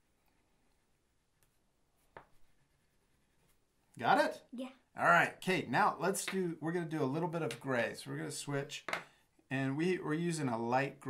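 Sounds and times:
oil pastels rubbing on paper: 1.9s - 3.8s.

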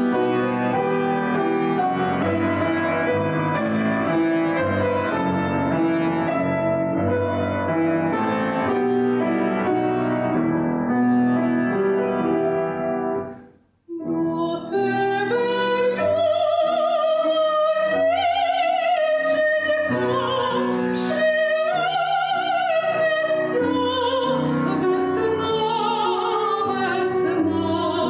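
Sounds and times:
grand piano playing: 0.0s - 28.0s
woman singing with vibrato: 13.9s - 28.0s.

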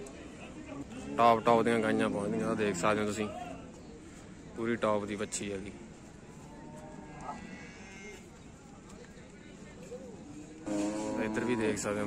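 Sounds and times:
low murmur of voices: 0.0s - 12.0s.

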